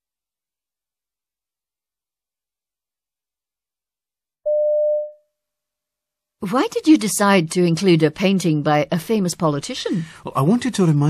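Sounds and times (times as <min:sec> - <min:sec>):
short electronic beep: 0:04.5 - 0:05.2.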